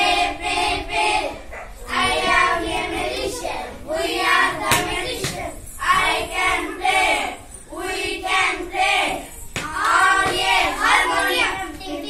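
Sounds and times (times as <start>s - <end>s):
boys singing a rhyme: 0.0s - 12.0s
sharp clap: 4.6s - 5.5s.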